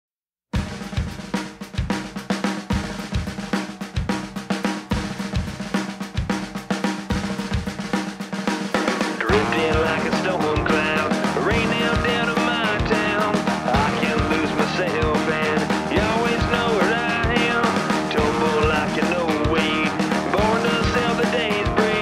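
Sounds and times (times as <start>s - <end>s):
rock drum beat: 0.5s - 22.0s.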